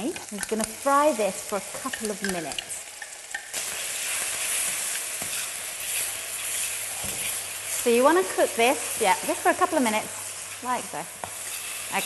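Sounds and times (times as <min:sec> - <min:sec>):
paste sizzling in hot oil: 0:00.0 - 0:12.0
metal spoon stirring in wok: 0:01.6 - 0:09.7, 0:11.2 - 0:12.0.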